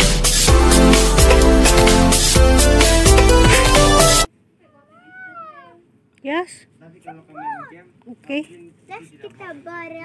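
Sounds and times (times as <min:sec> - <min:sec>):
background music: 0:00.0 - 0:04.3
child's meow-like call: 0:04.6 - 0:05.8.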